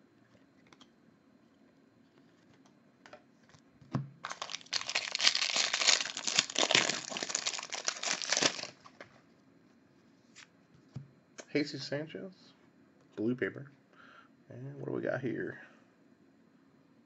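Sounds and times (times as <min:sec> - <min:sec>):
foil wrapper tearing and crinkling: 0:04.2 - 0:09.0.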